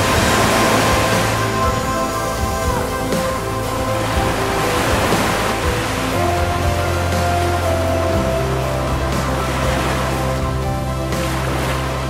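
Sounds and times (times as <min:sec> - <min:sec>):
music of sustained chords: 0:00.0 - 0:12.0
swell of noise: 0:00.0 - 0:12.0.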